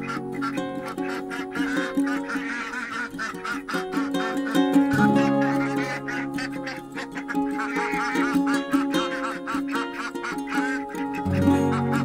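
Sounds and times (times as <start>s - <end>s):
background music with held notes: 0.0s - 12.0s
ducks honking quacks: 0.0s - 12.0s.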